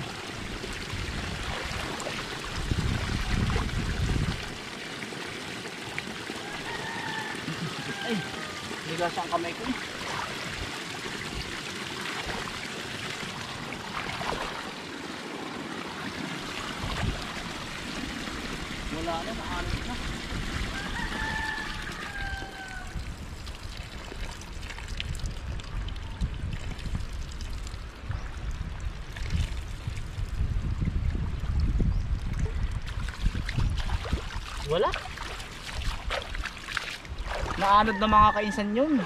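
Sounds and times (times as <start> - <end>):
water spilling and splashing: 0.0 - 38.0.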